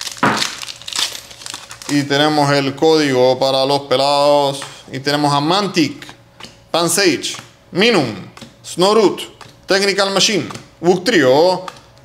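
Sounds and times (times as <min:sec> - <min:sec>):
foil ripping: 0:00.0 - 0:02.3
foil wrapper crinkling: 0:00.0 - 0:02.6.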